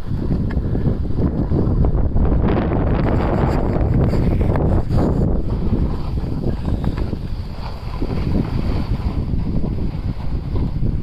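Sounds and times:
skis scraping over packed snow: 0:00.0 - 0:11.0
wind buffeting microphone: 0:00.0 - 0:11.0.

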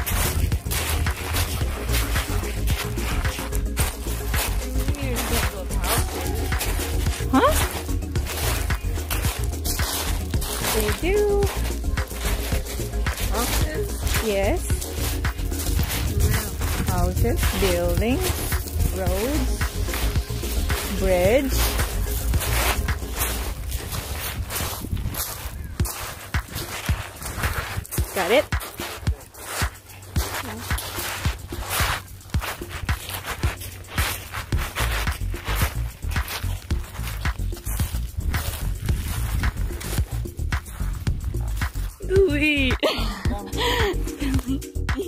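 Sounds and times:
person speaking: 0:00.0 - 0:24.6, 0:26.0 - 0:37.2, 0:41.4 - 0:45.0
background music: 0:00.0 - 0:45.0
footsteps crunching on pebbles: 0:00.0 - 0:45.0.

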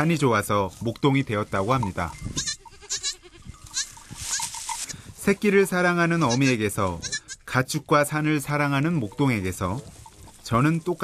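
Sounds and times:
goats bleating: 0:02.3 - 0:04.6, 0:06.2 - 0:07.6.

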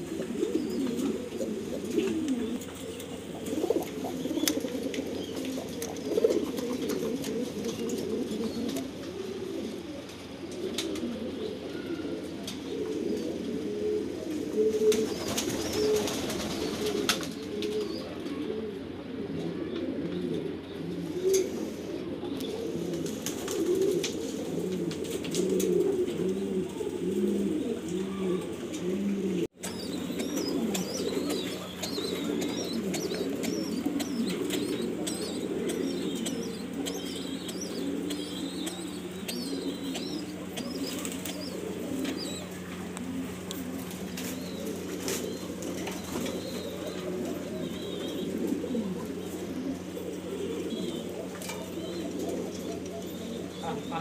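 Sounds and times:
pigeons cooing: 0:00.0 - 0:54.0.

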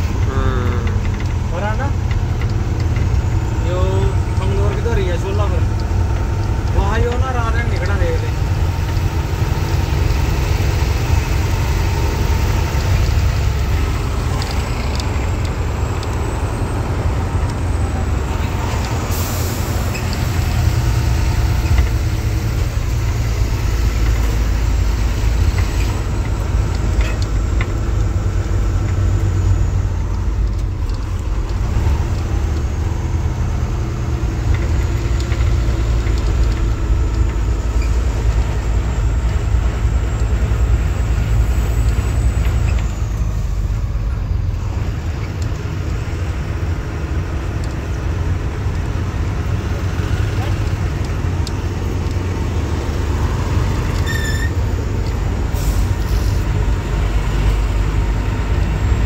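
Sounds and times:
truck engine and road noise: 0:00.0 - 0:59.0.

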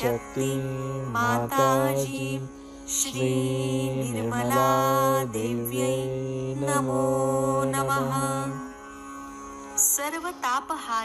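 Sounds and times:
mantra chanting: 0:00.0 - 0:08.8
steady musical drone: 0:00.0 - 0:11.0.

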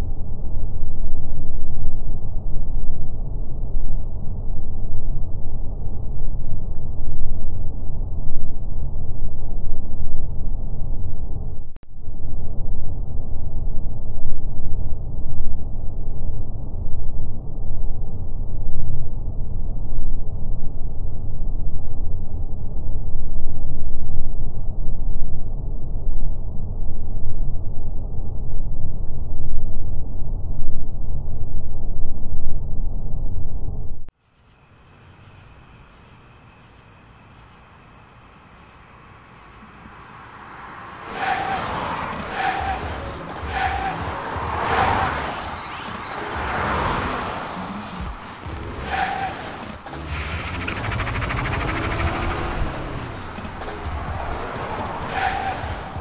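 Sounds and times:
loud low rumbling: 0:45.4 - 0:56.0.

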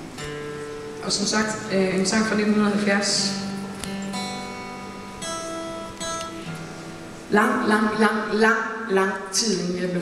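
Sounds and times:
acoustic guitar chords strummed: 0:00.0 - 0:08.8.

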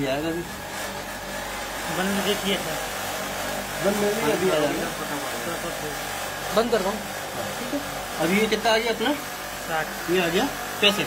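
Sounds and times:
air conditioner running: 0:00.0 - 0:11.0.

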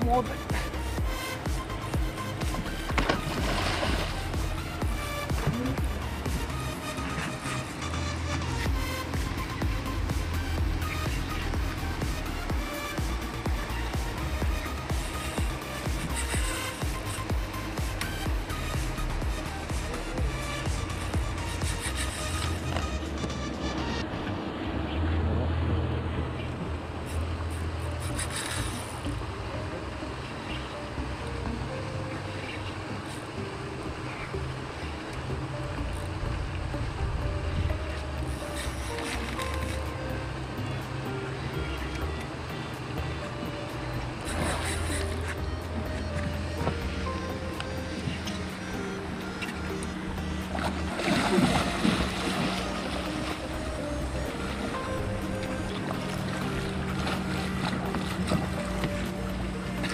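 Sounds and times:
background music with bass line: 0:00.0 - 0:59.9.

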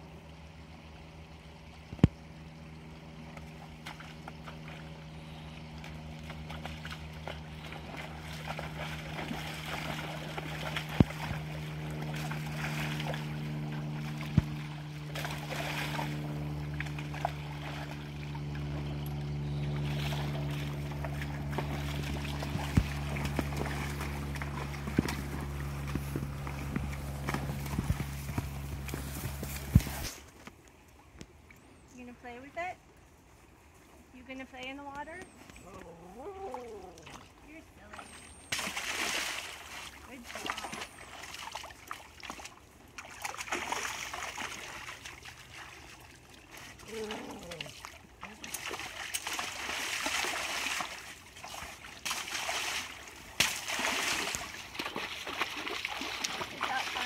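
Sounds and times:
hooves splashing through creek: 0:00.0 - 0:57.0
low hum: 0:00.0 - 0:57.0
hooves on stony path: 0:03.4 - 0:30.4.

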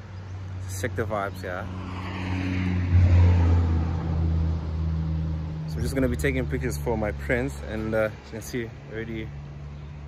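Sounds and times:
vehicle passing by: 0:00.5 - 0:10.0.

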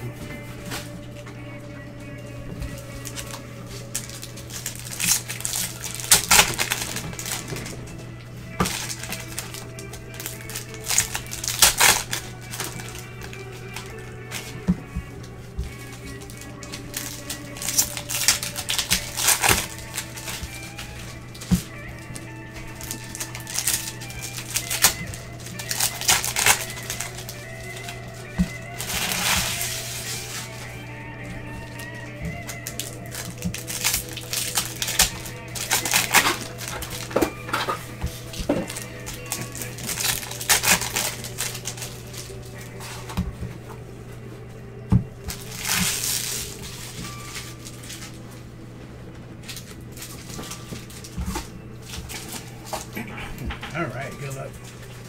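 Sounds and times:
quiet background music: 0:00.0 - 0:55.0
steady low hum: 0:00.0 - 0:55.0
foil wrapper crinkling: 0:00.2 - 0:43.8, 0:45.0 - 0:55.0.

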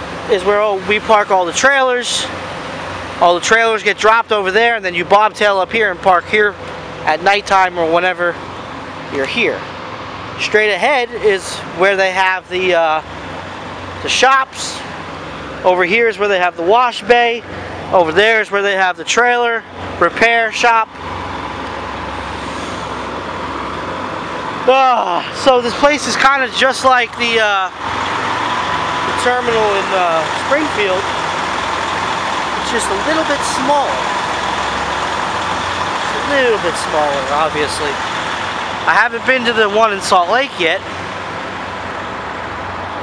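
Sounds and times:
heavy trucks running: 0:00.0 - 0:43.0
traffic hiss: 0:19.6 - 0:43.0.

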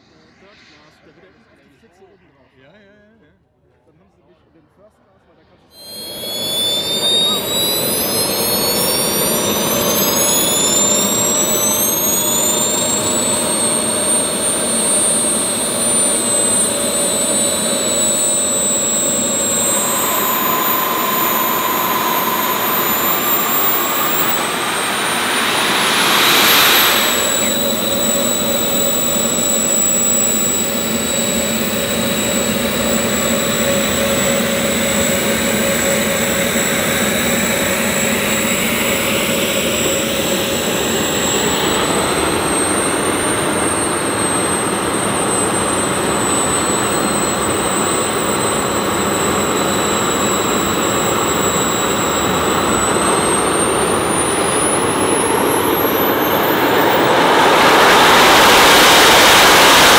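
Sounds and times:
model jet turbines whining: 0:05.4 - 0:59.9
rushing exhaust noise: 0:05.7 - 0:59.9.

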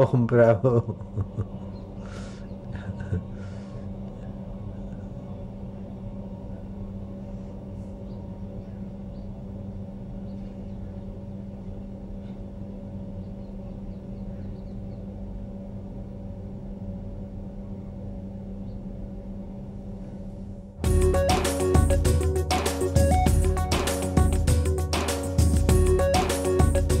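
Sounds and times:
electrical hum and hiss: 0:00.0 - 0:27.0.

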